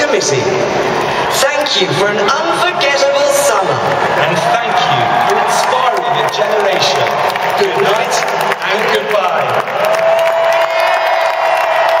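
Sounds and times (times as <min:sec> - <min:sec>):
stadium crowd cheering and applauding: 0:00.0 - 0:12.0.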